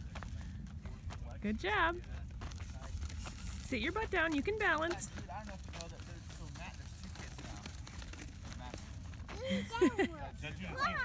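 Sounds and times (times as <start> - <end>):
clicks and crackles: 2.0 - 9.4.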